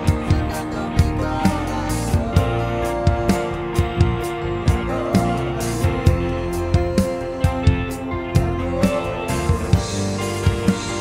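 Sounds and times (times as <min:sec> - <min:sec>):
backing track chords: 0:00.0 - 0:11.0
drum kit played with sticks: 0:00.0 - 0:11.0.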